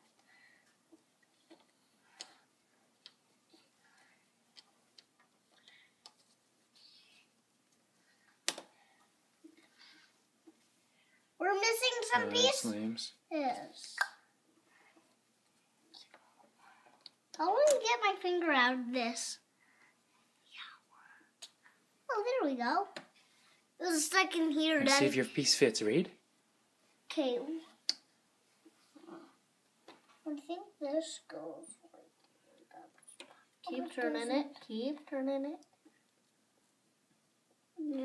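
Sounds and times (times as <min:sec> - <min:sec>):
faint whispering: 0:20.4 - 0:21.4.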